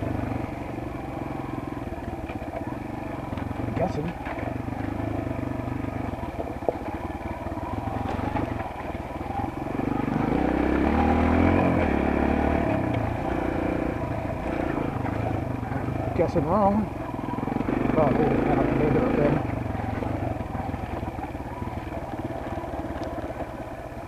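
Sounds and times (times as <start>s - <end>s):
dirt bike engine revving: 0.0s - 23.8s
stones ticking: 6.1s - 9.4s.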